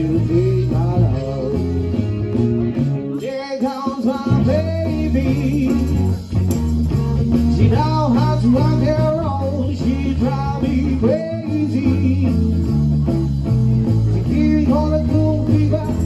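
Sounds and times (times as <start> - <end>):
guitar with bending melody: 0.0 - 16.0
steady bass line: 0.0 - 16.0.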